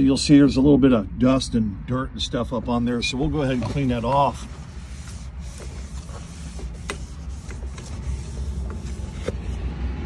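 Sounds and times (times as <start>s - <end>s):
scratchy rubbing on metal: 3.4s - 9.4s.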